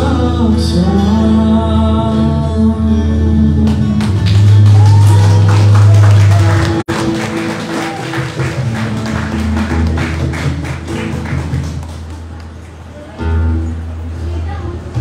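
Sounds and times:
electric bass: 0.0 - 8.0
strummed acoustic guitars: 0.0 - 15.0
cajon: 7.9 - 12.6.

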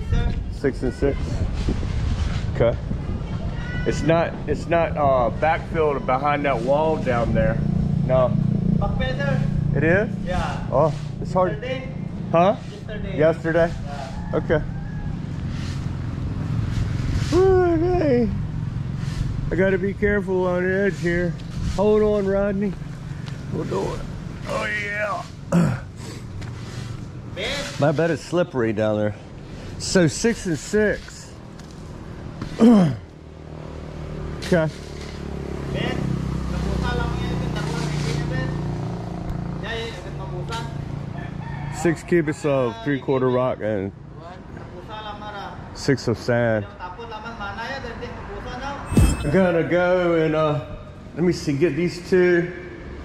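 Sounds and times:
vehicle engine passing: 1.3 - 30.6, 31.3 - 42.4.

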